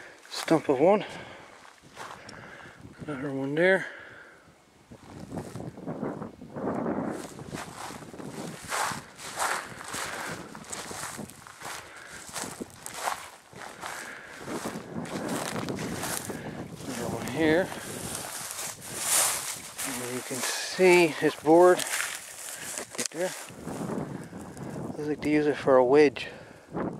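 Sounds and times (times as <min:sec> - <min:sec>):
footsteps through dry grass: 0:00.0 - 0:02.6, 0:04.9 - 0:05.8, 0:07.0 - 0:25.1.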